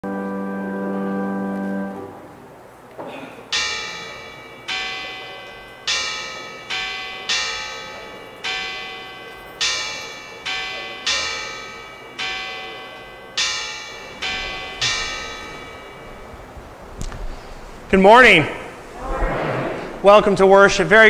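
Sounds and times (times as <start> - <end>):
church bells ringing: 0.0 - 2.4, 3.5 - 18.8.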